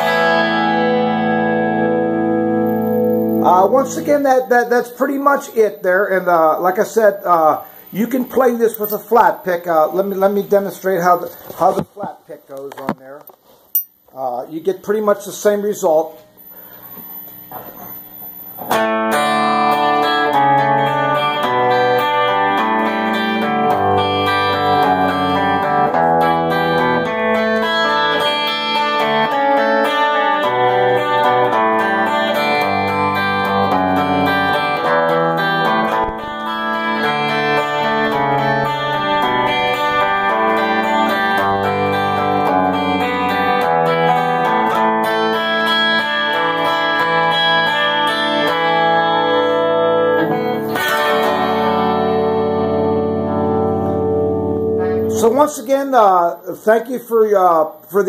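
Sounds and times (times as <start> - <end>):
twelve-string electric guitar picking: 0.0 - 12.0, 18.5 - 55.4.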